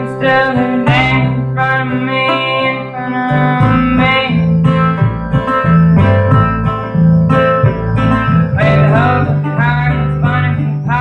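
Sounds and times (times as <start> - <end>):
acoustic guitars strumming: 0.0 - 11.0
bass line: 0.0 - 11.0.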